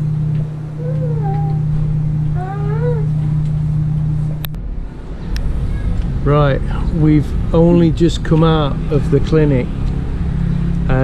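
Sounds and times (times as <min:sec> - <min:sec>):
low outdoor rumble: 0:00.0 - 0:11.0
machine humming: 0:00.0 - 0:11.0.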